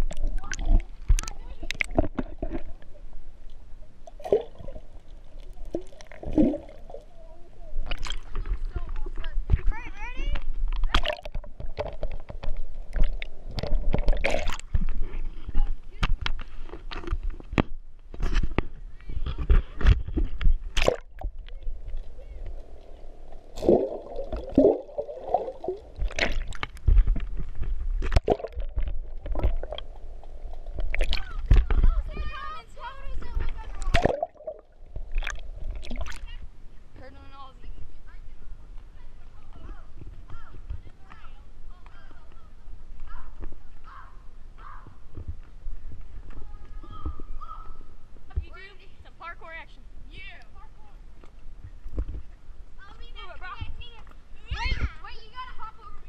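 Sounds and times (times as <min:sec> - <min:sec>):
splashes and knocks: 0:00.0 - 0:02.9, 0:10.4 - 0:15.2, 0:16.0 - 0:22.1, 0:23.5 - 0:29.9, 0:30.7 - 0:32.4, 0:33.2 - 0:36.4
bubbles: 0:00.0 - 0:03.2, 0:03.9 - 0:08.7, 0:10.8 - 0:15.0, 0:20.4 - 0:32.0, 0:33.8 - 0:36.3
water sloshing and gurgling: 0:00.0 - 0:48.7, 0:49.6 - 0:56.0
wind rumbling on microphone: 0:07.1 - 0:48.6.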